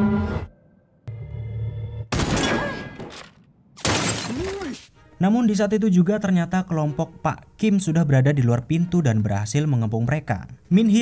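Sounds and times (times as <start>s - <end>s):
glass shattering: 2.2s - 4.9s.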